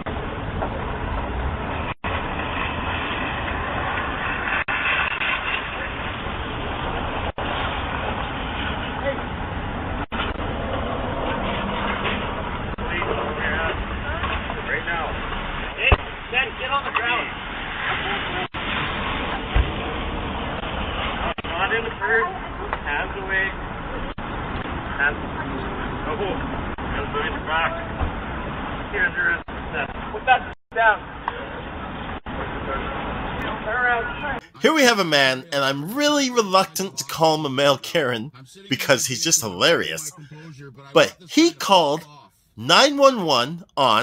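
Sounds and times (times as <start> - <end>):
street noise hiss: 0.1 - 44.0
people talking: 34.4 - 44.0.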